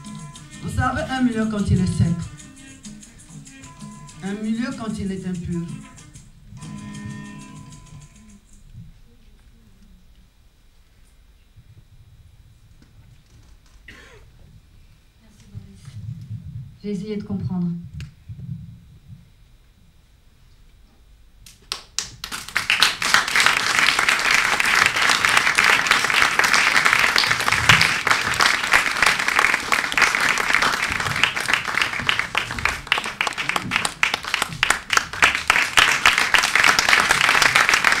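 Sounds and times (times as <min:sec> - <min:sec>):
audience applause: 0:21.7 - 0:38.0.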